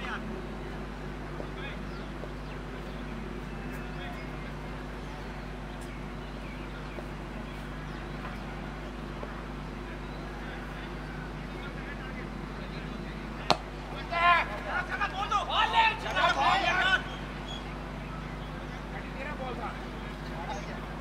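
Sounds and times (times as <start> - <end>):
players shouting: 13.3 - 21.0
cricket bat hitting ball: 13.5 - 13.7.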